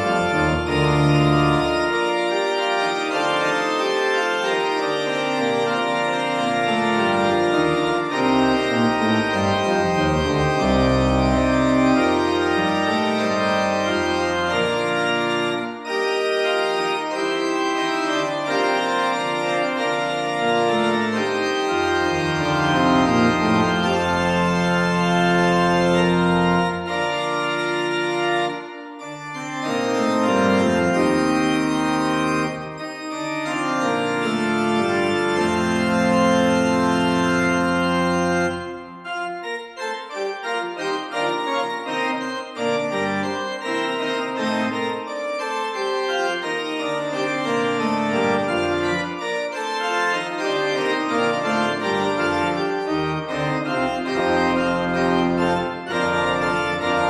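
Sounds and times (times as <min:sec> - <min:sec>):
organ music: 0:00.0 - 0:57.0.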